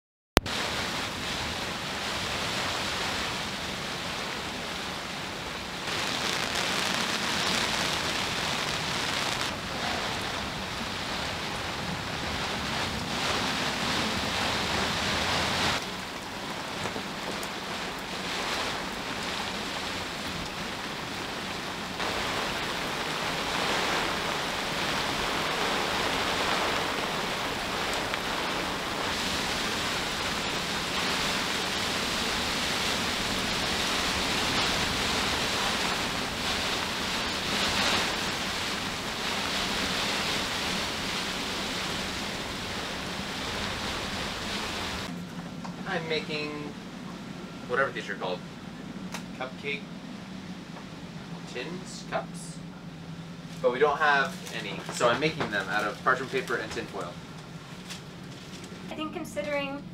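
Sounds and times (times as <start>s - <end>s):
rain over choppy water: 0.4s - 59.9s
storm wind: 0.4s - 59.9s.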